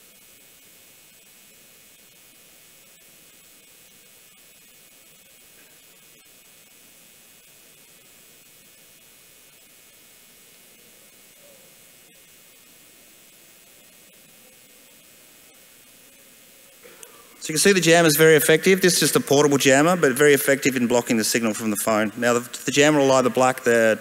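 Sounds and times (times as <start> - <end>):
static hiss: 0.0 - 24.0.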